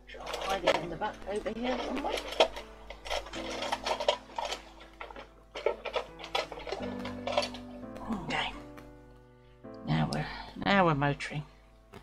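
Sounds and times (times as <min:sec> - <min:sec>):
rummaging through craft tools: 0:00.0 - 0:07.9.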